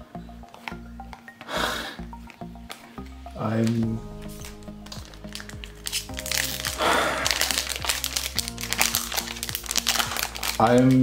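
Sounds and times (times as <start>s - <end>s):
background music: 0.0s - 11.0s
foil wrapper crinkling: 3.6s - 11.0s.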